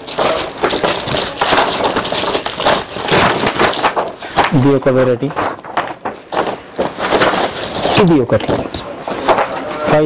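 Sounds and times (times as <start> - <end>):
paper and plastic crinkling: 0.0 - 10.0.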